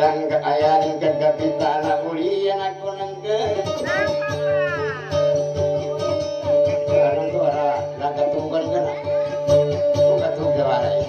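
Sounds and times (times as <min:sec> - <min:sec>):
plucked guitar: 0:00.0 - 0:11.0.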